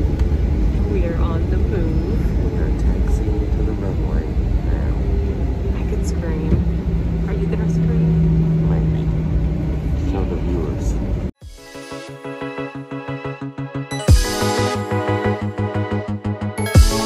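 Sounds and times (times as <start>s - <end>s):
engine and wheel rumble: 0.0s - 11.4s
steady hum: 0.0s - 11.4s.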